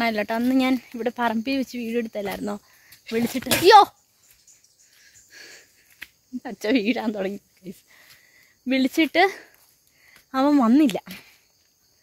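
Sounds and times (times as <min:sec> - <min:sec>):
woman speaking loudly: 0:00.0 - 0:03.9, 0:10.4 - 0:11.2
woman breathing: 0:04.9 - 0:06.0, 0:07.8 - 0:08.6, 0:09.3 - 0:10.3.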